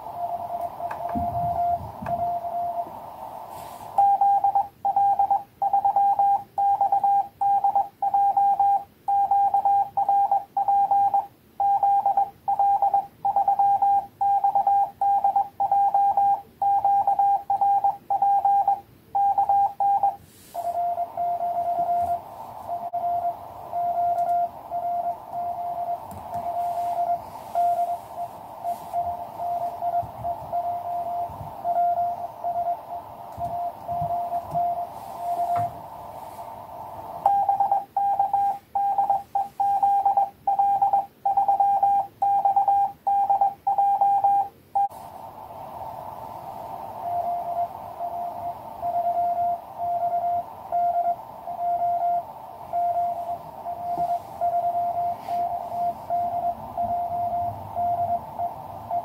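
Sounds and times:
morse code sidetone: 0.0s - 3.0s, 3.6s - 45.0s, 46.9s - 59.0s
receiver hiss: 0.0s - 59.0s
weak morse signal: 0.0s - 59.0s.

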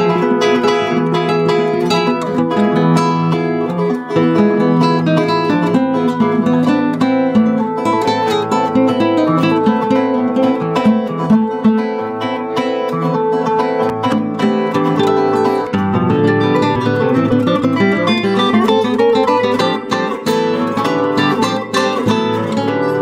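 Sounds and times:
classical guitar duet: 0.0s - 23.0s.

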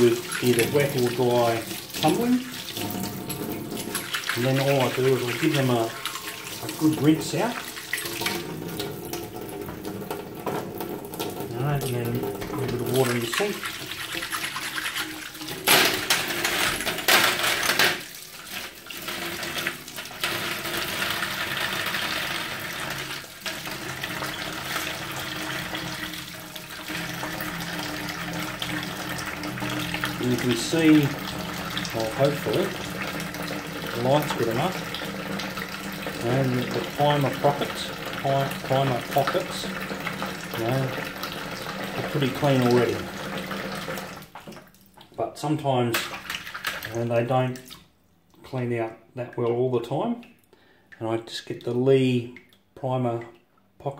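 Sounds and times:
metal cases rinsed under water: 0.0s - 45.2s, 45.8s - 47.7s
tap water splashing into sink: 0.0s - 45.2s, 45.9s - 47.9s.

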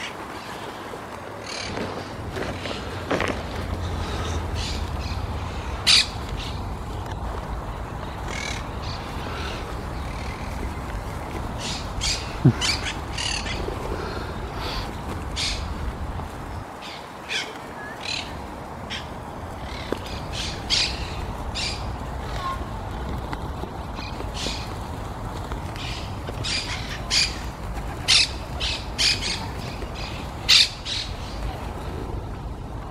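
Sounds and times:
pigeon wing flaps: 0.0s - 5.0s, 6.1s - 32.3s.

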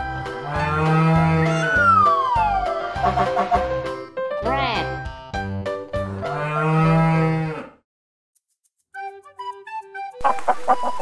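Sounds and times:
children's music with steady beat: 0.0s - 6.2s, 8.4s - 10.8s
bull mooing sound effect: 0.2s - 3.8s, 6.0s - 7.8s
falling whistle-like tone: 1.6s - 2.9s.

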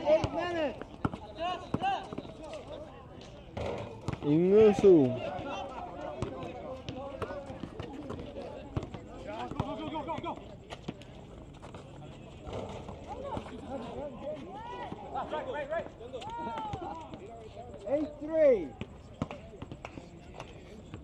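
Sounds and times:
voices calling and talking: 0.0s - 21.0s
basketball bouncing on concrete: 3.6s - 4.6s, 6.1s - 11.0s.

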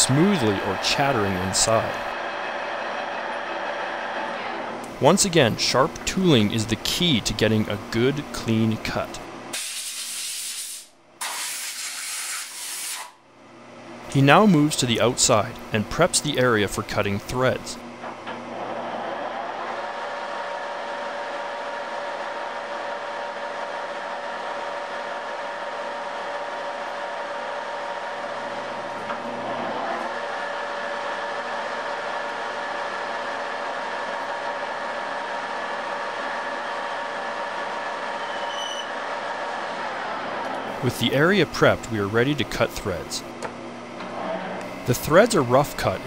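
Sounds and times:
metal lathe whining: 0.0s - 5.9s, 18.3s - 42.5s.

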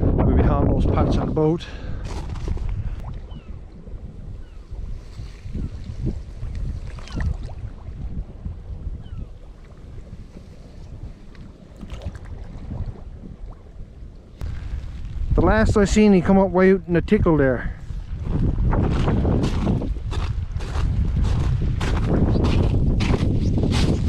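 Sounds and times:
wind buffeting microphone: 0.0s - 24.0s
water washing among sea ice: 9.4s - 13.8s.

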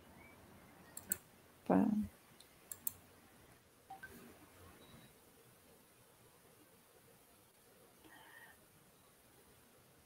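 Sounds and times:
computer mouse clicks: 1.0s - 1.2s, 2.4s - 3.0s.

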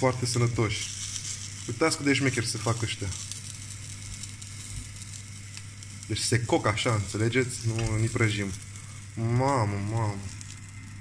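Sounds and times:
sausages sizzling in a pan: 0.0s - 11.0s.

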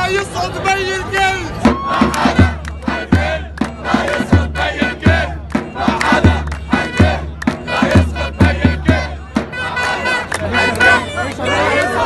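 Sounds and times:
crowd shouting and chanting: 0.0s - 12.0s
drum beating steadily: 1.5s - 11.0s.

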